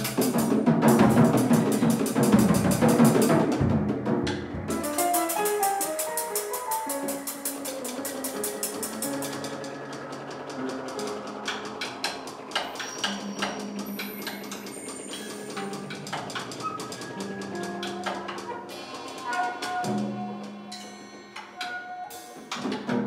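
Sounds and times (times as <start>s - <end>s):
drums and cymbals struck lightly: 0.0s - 10.1s, 12.6s - 23.0s
jazz piano: 0.0s - 23.0s.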